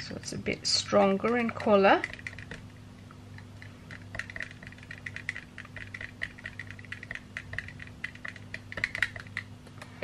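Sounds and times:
stirrer clicking in plastic tub: 1.0s - 2.7s, 3.4s - 9.9s.

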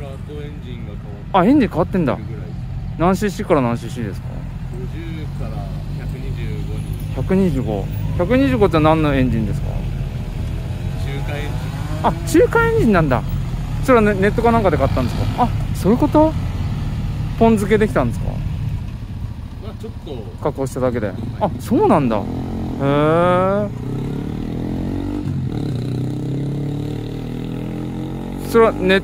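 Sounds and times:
motorcycle engine idling: 0.0s - 24.5s
voices talking: 0.0s - 26.2s, 28.2s - 29.0s.

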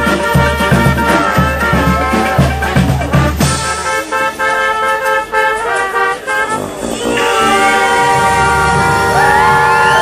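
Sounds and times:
brass band playing punchy notes: 0.0s - 10.0s.

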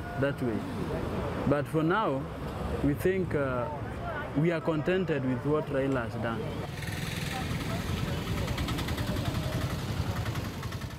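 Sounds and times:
traffic rumble: 0.0s - 10.9s
faint voices: 3.6s - 10.7s.

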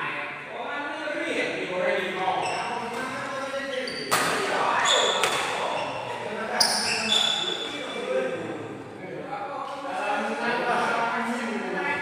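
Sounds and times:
murmur of voices: 0.0s - 12.0s
shoes squeaking on court floor: 2.4s - 8.0s.

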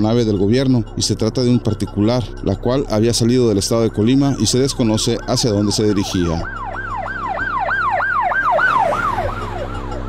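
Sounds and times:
electronic siren yelping: 3.6s - 10.0s.

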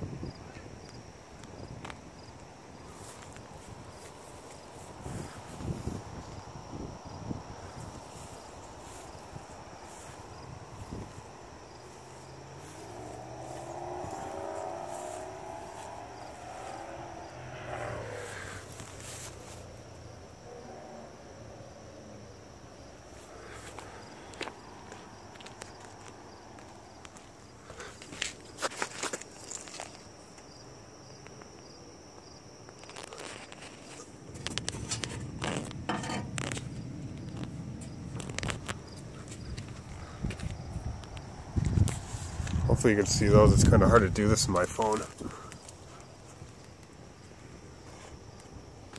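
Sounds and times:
distant engine drone: 2.6s - 28.0s, 34.3s - 48.9s
low rushing noise: 7.8s - 19.5s.

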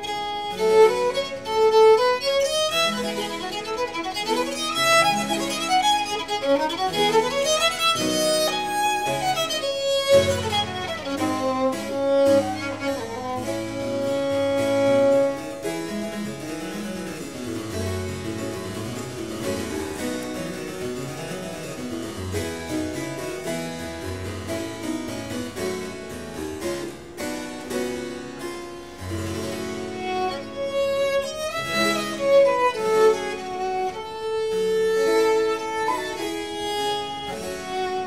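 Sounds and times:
violin long notes: 0.0s - 15.7s.

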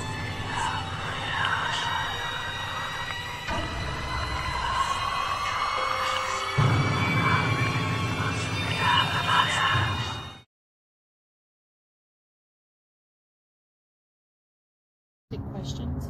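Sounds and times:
eerie horror music: 0.0s - 10.5s.

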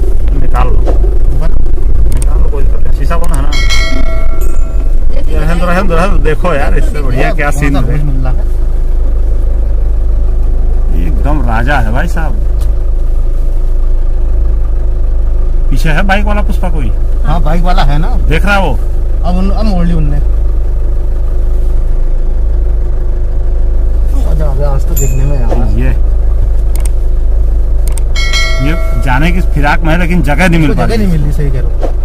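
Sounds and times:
car engine rumble from inside cabin: 0.0s - 32.0s.

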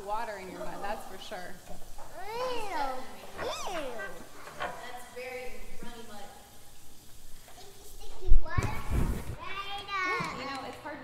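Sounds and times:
children chattering and calling out: 1.9s - 5.7s, 7.0s - 11.0s.

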